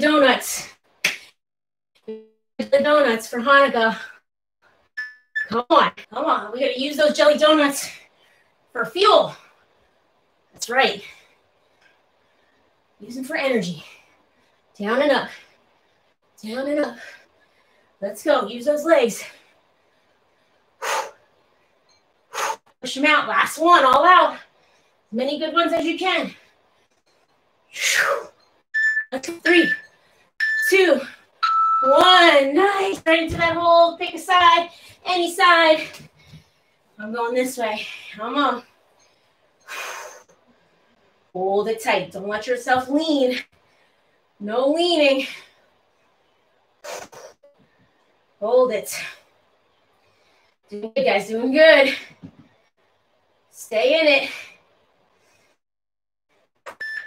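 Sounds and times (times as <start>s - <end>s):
high beep: 5.0s - 5.6s, 28.8s - 30.8s, 31.4s - 32.0s, 56.7s - 57.0s.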